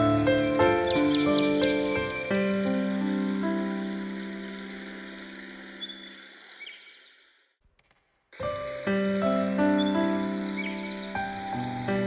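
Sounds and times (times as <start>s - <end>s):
held piano chord: 0.0s - 5.8s, 8.4s - 12.0s
bird chirps: 0.0s - 7.5s, 8.5s - 12.0s
forest ambience hiss: 0.0s - 7.5s, 8.4s - 12.0s.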